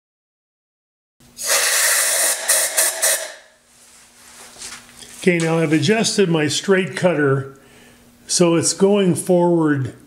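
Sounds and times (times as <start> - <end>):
lathe cutter rough hiss: 1.4 - 3.6.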